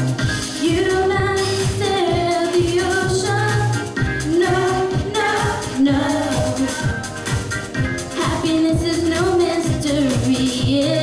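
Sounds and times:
backing track with steady beat: 0.0s - 11.0s
girl singing into a microphone: 0.6s - 3.7s, 4.3s - 6.8s, 8.2s - 11.0s.

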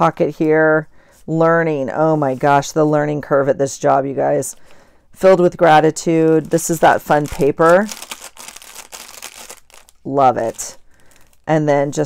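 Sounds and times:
paper rustling and crinkling: 6.3s - 11.5s.

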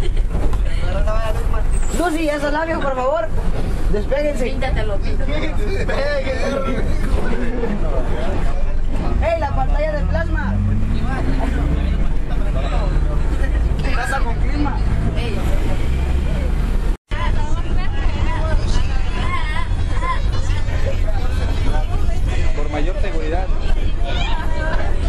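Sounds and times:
bus engine rumble and road noise: 0.0s - 25.0s
passengers chattering: 0.0s - 25.0s.

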